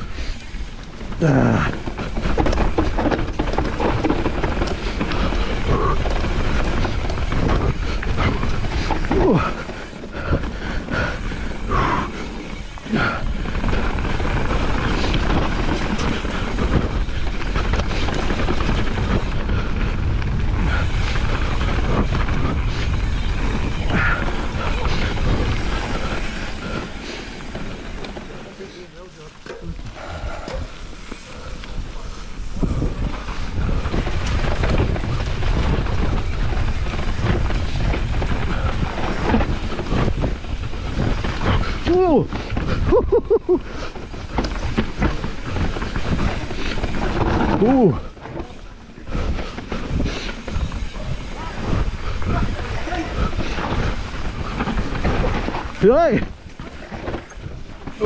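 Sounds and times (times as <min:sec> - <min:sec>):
wind rushing on microphone: 0:00.0 - 0:28.3, 0:29.6 - 0:58.0
bike rattling over bumps: 0:00.0 - 0:58.0
tyre noise on dirt: 0:00.0 - 0:58.0.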